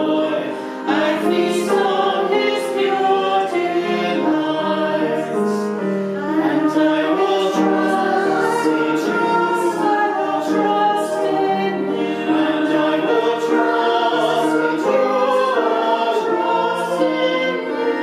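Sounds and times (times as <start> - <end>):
group singing a hymn: 0.0 - 18.0.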